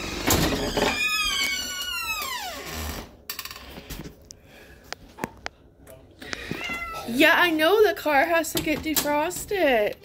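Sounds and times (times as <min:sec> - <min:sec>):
cat meowing: 0:06.4 - 0:07.1.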